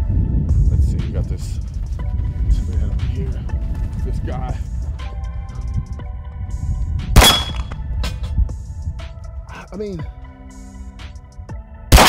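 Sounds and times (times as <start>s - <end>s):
steel target ringing: 7.2s - 7.7s
pistol shot: 7.2s - 7.8s.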